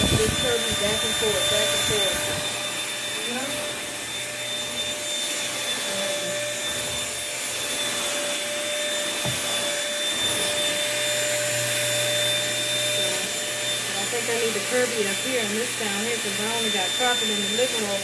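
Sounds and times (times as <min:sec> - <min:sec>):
stick vacuum cleaner running: 0:00.0 - 0:18.0.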